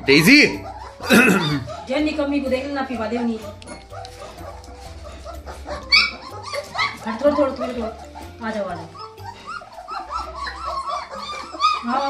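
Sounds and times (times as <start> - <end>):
puppies whining: 0.0 - 12.0.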